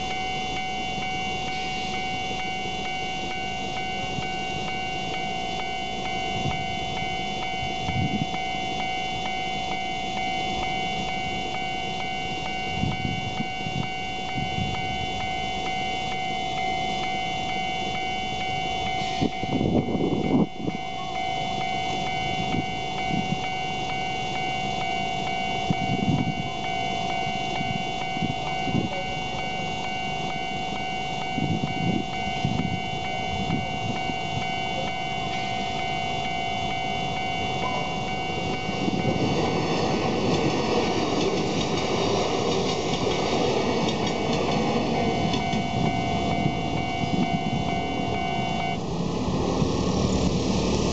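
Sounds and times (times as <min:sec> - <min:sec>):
level crossing warning bell: 0:00.0 - 0:50.9
train passing: 0:00.0 - 0:50.9.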